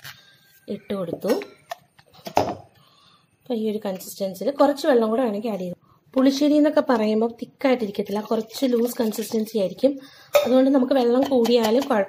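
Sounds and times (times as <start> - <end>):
woman's voice: 0.7 - 1.6, 3.5 - 12.0.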